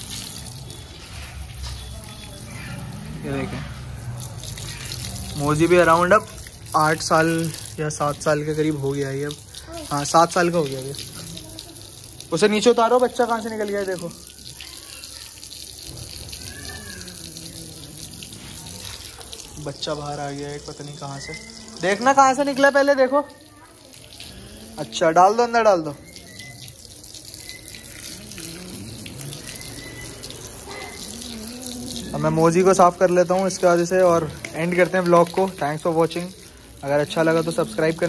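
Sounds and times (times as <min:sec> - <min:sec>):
water jet splashing on dog: 0:00.0 - 0:38.0.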